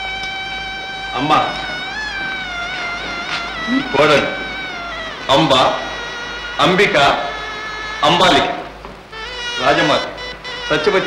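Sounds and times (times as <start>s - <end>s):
held wavering score note: 0.0s - 11.0s
short vocal cry: 2.8s - 7.7s.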